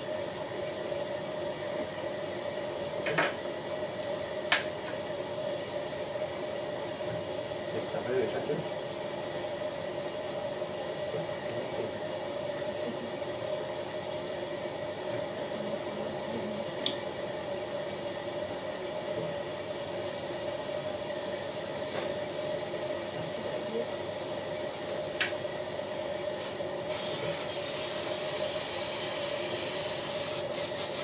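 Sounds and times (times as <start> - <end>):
dental suction hiss and whine: 24.5 - 31.0.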